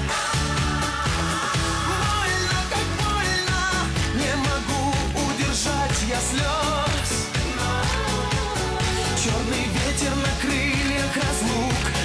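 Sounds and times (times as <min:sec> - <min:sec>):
pop song with dance beat: 0:00.0 - 0:12.0.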